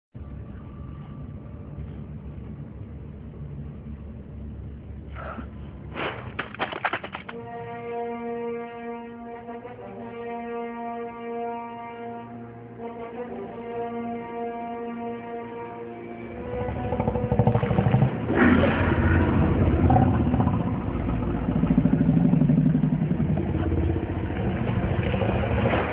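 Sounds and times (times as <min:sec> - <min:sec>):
low brass drone of score music: 0:07.3 - 0:25.9
low rumble: 0:16.4 - 0:25.9.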